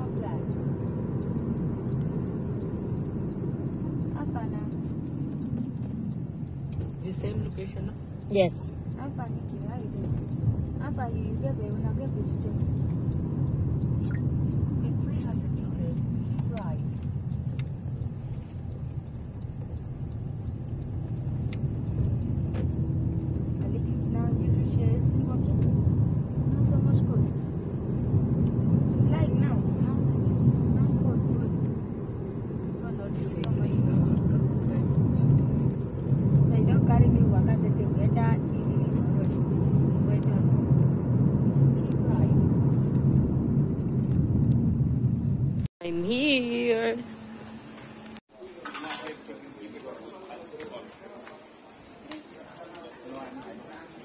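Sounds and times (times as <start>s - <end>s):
car road and engine rumble: 0.0s - 48.6s.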